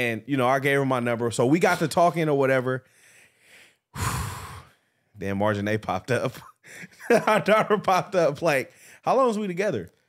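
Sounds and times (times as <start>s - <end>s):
breathy sigh: 3.0s - 4.8s.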